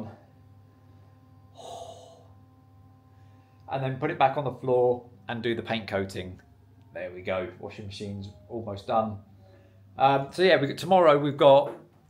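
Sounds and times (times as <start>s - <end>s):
man sighing: 1.5s - 2.3s.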